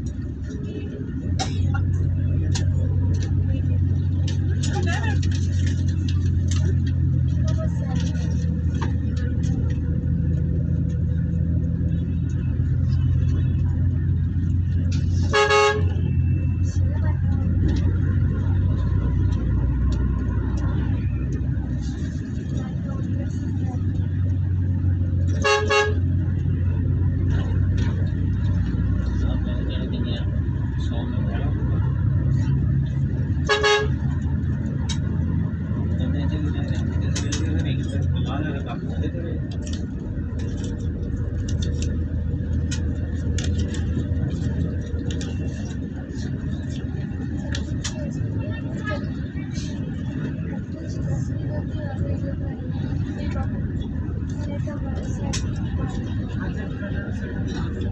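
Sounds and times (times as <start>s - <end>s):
vehicle engine and road rumble: 0.0s - 57.9s
vehicle horn: 15.2s - 16.2s, 25.3s - 26.1s, 33.4s - 34.0s.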